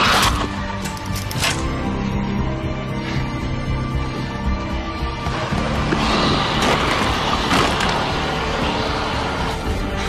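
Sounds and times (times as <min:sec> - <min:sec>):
dramatic music: 0:00.0 - 0:10.0.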